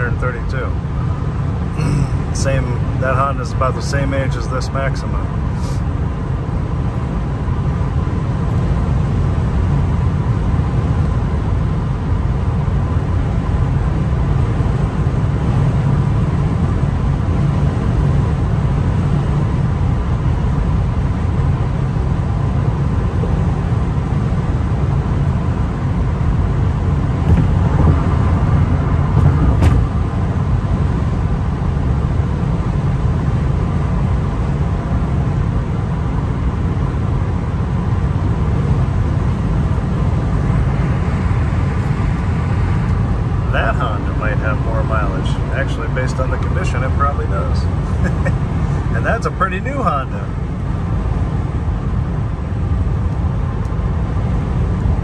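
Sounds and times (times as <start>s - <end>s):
tyres rumbling on road: 0.0s - 20.6s, 22.5s - 55.0s
car engine hum: 0.0s - 55.0s.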